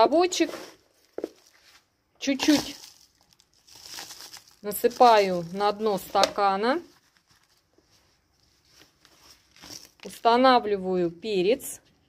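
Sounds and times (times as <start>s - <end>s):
slight rustle: 6.8s - 10.1s.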